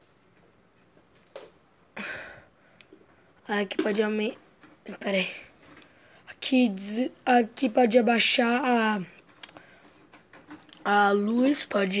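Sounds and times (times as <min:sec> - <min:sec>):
person speaking: 0:03.4 - 0:09.6, 0:10.5 - 0:12.0.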